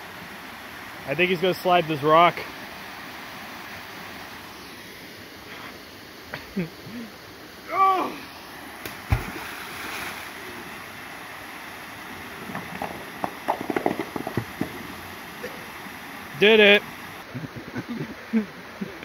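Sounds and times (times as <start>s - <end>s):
person shouting: 7.7s - 8.3s
rock plunging into water: 8.9s - 10.2s, 12.4s - 15.0s
waterfall pouring: 12.0s - 17.2s.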